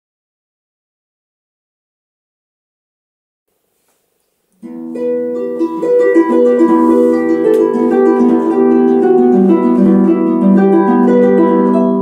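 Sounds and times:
harp plucked notes: 0:04.6 - 0:12.0.

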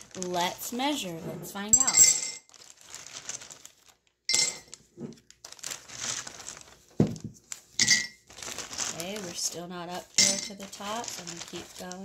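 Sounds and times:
plastic bag crinkling: 0:00.0 - 0:12.0
plastic bears clattering in mug: 0:01.7 - 0:02.5, 0:07.8 - 0:12.0.

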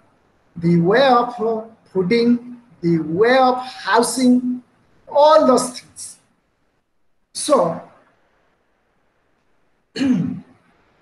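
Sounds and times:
man clearing throat: 0:10.0 - 0:10.5.

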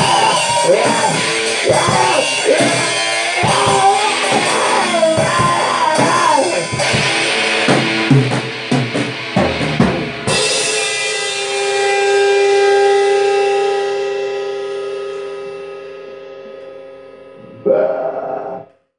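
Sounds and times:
drums and cymbals: 0:00.0 - 0:12.3
rock band playing live: 0:00.0 - 0:14.3
held guitar chord ringing: 0:00.0 - 0:17.7.

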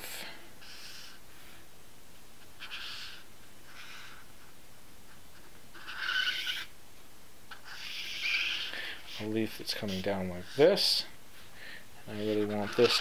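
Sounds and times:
marker squeaking on paper: 0:02.6 - 0:04.5, 0:05.3 - 0:06.7, 0:07.5 - 0:11.0, 0:12.1 - 0:13.0.

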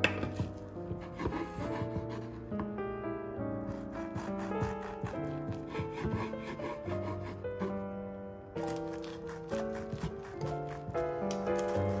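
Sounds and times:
knife scraping wooden board: 0:00.0 - 0:02.4, 0:03.7 - 0:07.8, 0:08.6 - 0:12.0
background music: 0:00.0 - 0:12.0
knife sawing through bread: 0:00.9 - 0:02.4, 0:03.7 - 0:07.8, 0:08.6 - 0:12.0.

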